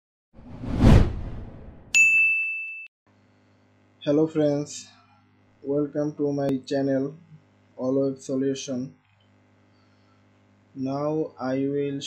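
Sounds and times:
faint low hum: 3.2s - 12.0s.

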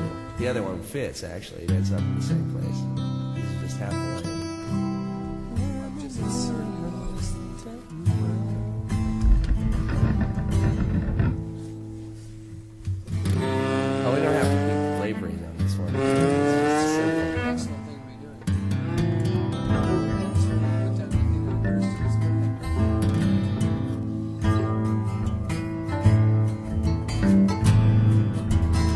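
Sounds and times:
acoustic guitars playing: 0.0s - 28.9s
person singing: 5.4s - 10.4s, 18.9s - 22.8s.

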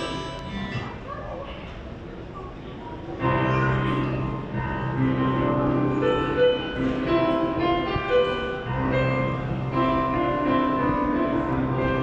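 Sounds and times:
electronic keyboard chord: 0.0s - 0.8s, 3.3s - 12.0s
faint murmuring voices: 0.0s - 12.0s.

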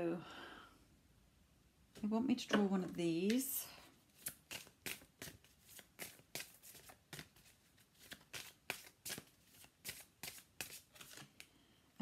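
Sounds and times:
cards shuffled by hand: 4.1s - 11.5s.

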